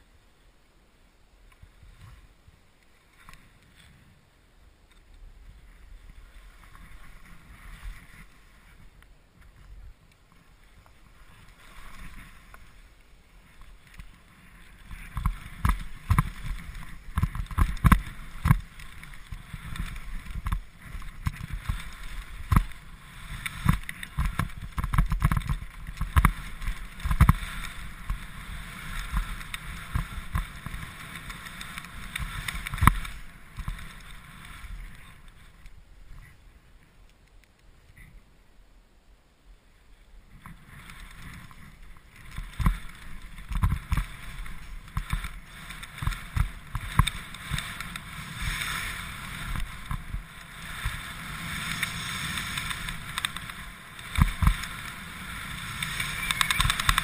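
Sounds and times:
skis swishing through powder snow: 1.6s - 4.4s, 5.1s - 36.9s, 39.9s - 57.0s
skis knocking and thumping: 4.9s - 35.6s, 40.3s - 57.0s.

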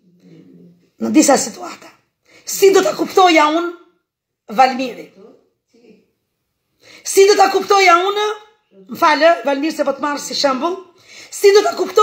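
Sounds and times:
woman speaking: 0.0s - 6.2s, 7.0s - 12.0s.

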